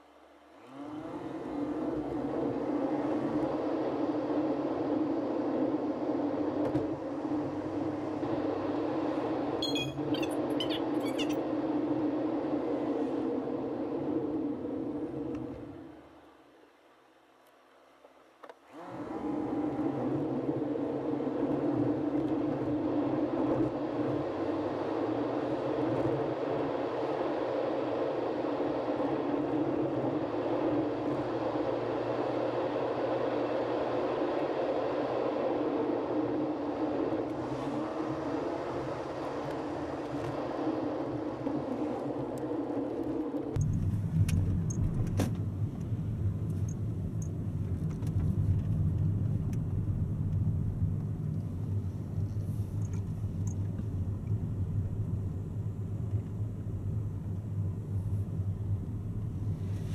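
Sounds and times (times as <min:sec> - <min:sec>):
road and engine noise in car: 0:00.0 - 0:59.9.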